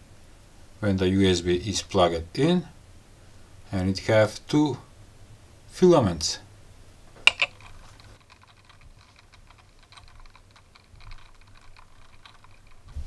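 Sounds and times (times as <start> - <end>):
sharp clicks: 7.3 - 13.0.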